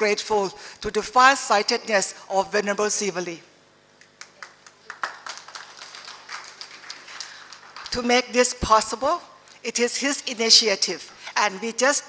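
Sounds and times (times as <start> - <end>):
audience applause: 4.2 - 8.0
person speaking: 7.9 - 12.0.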